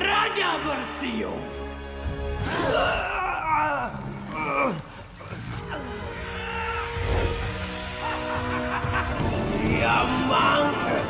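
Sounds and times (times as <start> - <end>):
film score music: 0.0 - 11.0.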